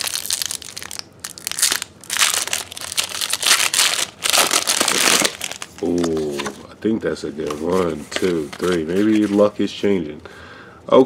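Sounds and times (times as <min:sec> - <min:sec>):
foil wrapper tearing and crinkling: 0:00.0 - 0:06.2.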